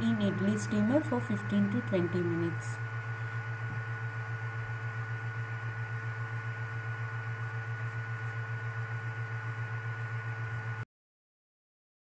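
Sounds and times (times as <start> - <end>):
fluttering electrical hum: 0.0 - 10.8.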